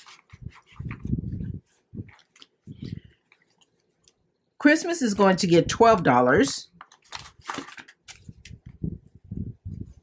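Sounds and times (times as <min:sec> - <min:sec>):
paper bills rustling: 0:00.0 - 0:04.0, 0:06.8 - 0:08.6
plastic binder pocket crinkling: 0:00.0 - 0:04.0, 0:06.7 - 0:08.7.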